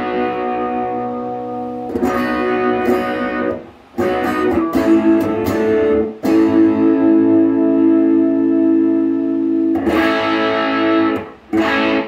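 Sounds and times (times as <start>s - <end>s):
overdriven electric guitar chords: 0.0s - 12.0s.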